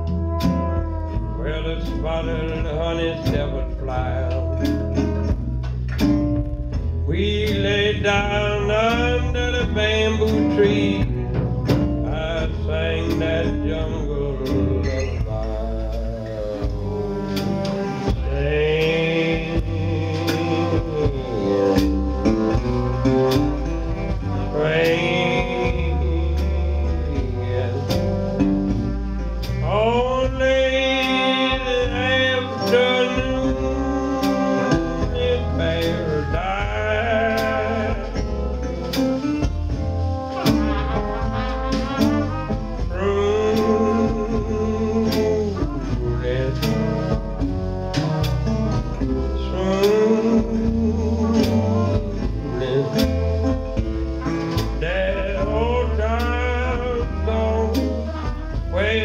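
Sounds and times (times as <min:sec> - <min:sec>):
guitar: 0:00.0 - 0:59.0
horns playing melody: 0:00.0 - 0:59.0
steady drum beat: 0:00.0 - 0:59.0
upright bass: 0:00.0 - 0:59.0.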